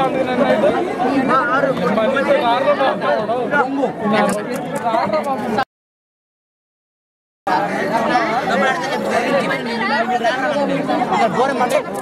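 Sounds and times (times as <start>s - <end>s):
overlapping chatter of voices: 0.0s - 5.7s, 7.5s - 12.0s.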